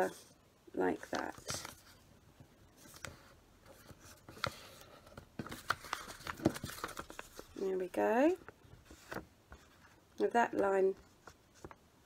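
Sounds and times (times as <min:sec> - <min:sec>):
paper being folded and creased: 0:01.0 - 0:02.0, 0:02.8 - 0:10.0.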